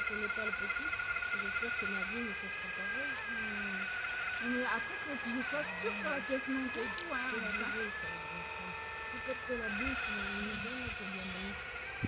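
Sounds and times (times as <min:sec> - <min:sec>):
people talking: 0:00.0 - 0:11.6
high-pitched electric motor whine: 0:00.0 - 0:12.0.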